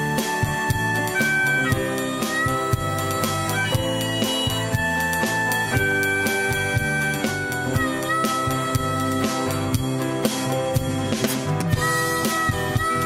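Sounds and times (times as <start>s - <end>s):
band with guitar and beat: 0.0s - 13.0s
harmonica slow melody: 0.0s - 13.0s.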